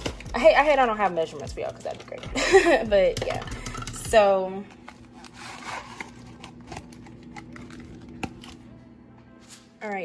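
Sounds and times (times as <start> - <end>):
kitchen items clicking and tapping: 0.0 - 8.4.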